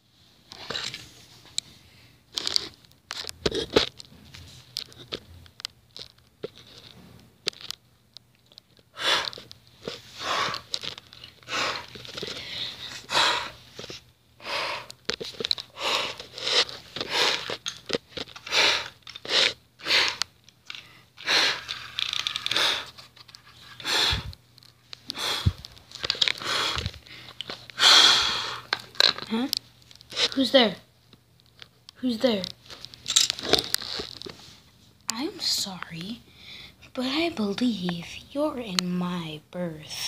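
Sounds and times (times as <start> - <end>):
person breathing out: 8.9 - 9.4, 10.1 - 10.8, 11.4 - 13.7, 18.4 - 23.0, 23.8 - 24.4, 25.1 - 28.7.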